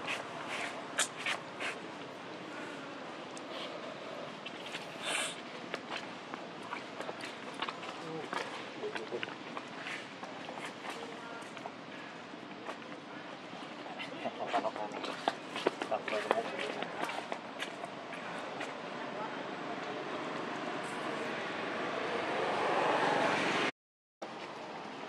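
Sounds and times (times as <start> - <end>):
faint distant voices: 0.0 - 22.6.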